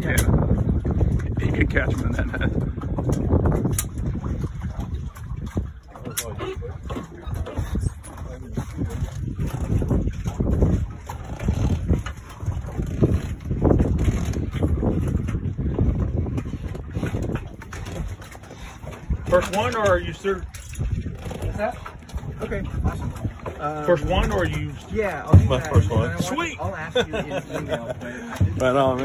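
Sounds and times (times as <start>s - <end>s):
wind rumbling on microphone: 0.0s - 29.0s
people talking: 1.3s - 2.5s, 19.3s - 20.5s, 22.4s - 29.0s.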